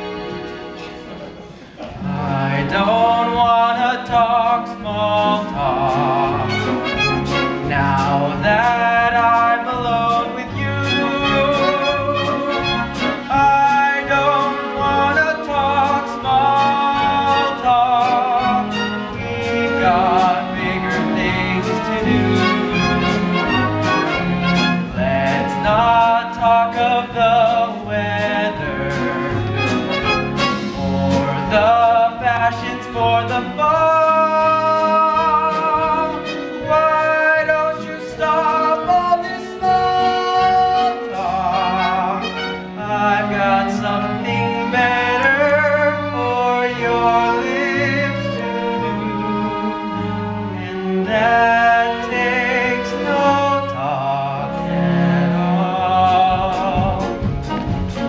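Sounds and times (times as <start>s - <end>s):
orchestral melody: 0.0s - 58.0s.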